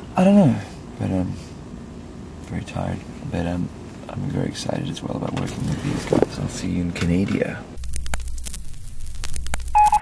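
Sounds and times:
electronic dialing beeps: 9.7s - 10.0s.

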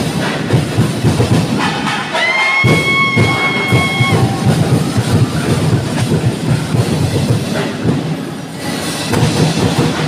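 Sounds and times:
fast festival percussion music: 0.0s - 10.0s.

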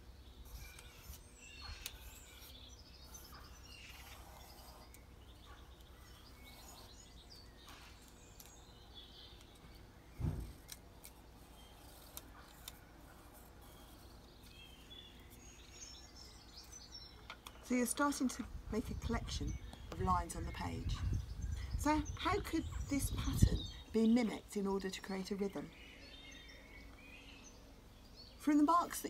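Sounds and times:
faint birdsong chirps: 0.0s - 29.0s
dull thump: 10.2s - 10.6s.

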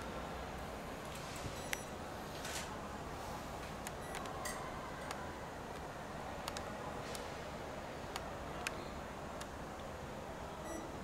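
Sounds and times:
steady hum and hiss: 0.0s - 11.0s
high electronic beep: 10.6s - 10.9s.

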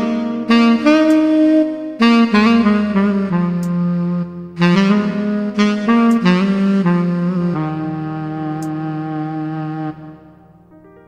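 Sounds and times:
low bass note: 0.0s - 10.8s
keyboard held chords: 0.0s - 11.0s
keyboard saxophone melody: 0.0s - 11.0s.

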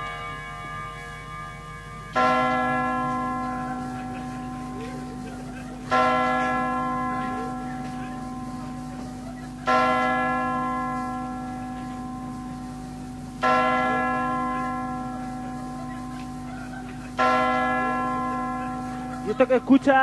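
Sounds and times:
large bell striking: 0.0s - 20.0s.

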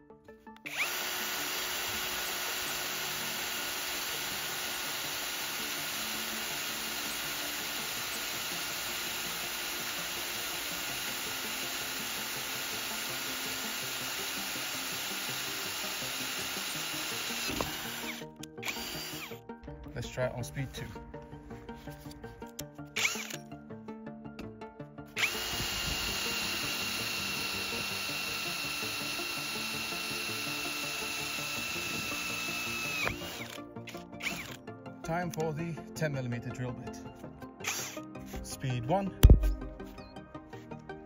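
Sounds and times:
cordless drill drilling into steel: 0.6s - 19.4s, 23.0s - 23.5s, 25.1s - 34.6s, 37.6s - 38.0s.

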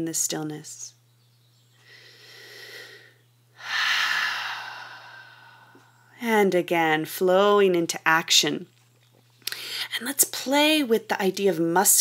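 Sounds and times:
woman breathing in and out: 1.8s - 6.1s.

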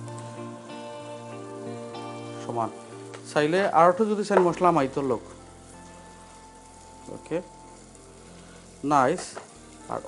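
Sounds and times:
food sizzling in a pan: 0.0s - 10.0s.

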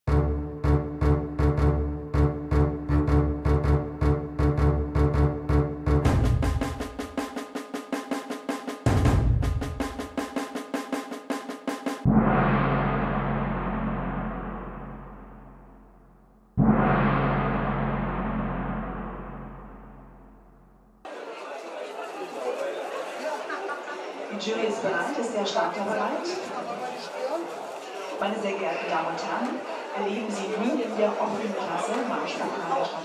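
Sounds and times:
dramatic percussive intro music: 0.1s - 21.0s
deep ringing impacts: 12.1s - 21.0s
open-air stadium ambience: 21.0s - 33.0s.

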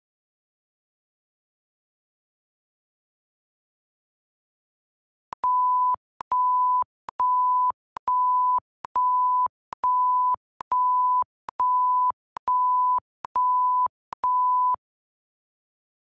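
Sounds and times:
censor bleep tone: 5.4s - 14.8s.

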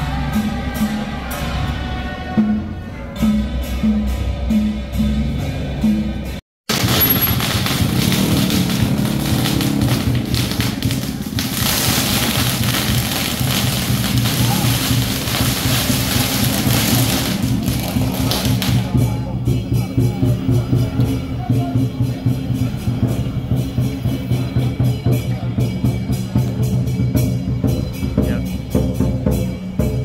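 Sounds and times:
firecrackers crackling: 6.7s - 25.5s
procession drumming: 6.7s - 30.0s.

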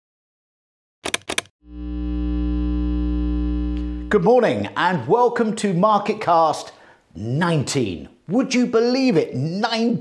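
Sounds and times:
held synthesizer chord with deep bass: 1.7s - 4.1s.

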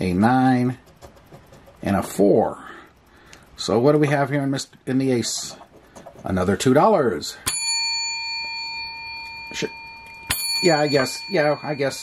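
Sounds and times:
small bell ringing: 7.4s - 12.0s.

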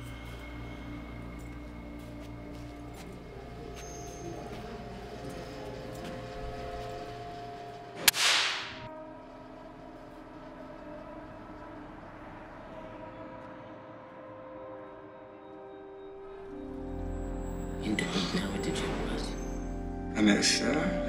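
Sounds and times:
low music drone: 0.0s - 21.0s.

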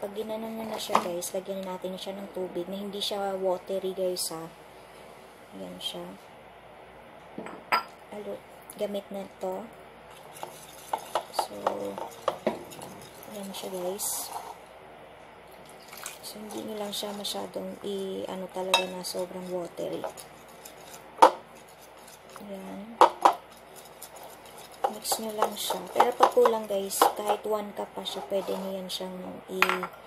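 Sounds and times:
glass bowl clinking: 7.4s - 8.0s, 18.7s - 19.1s
glass bowl scraping: 10.1s - 14.6s, 18.7s - 27.4s, 28.0s - 28.9s.

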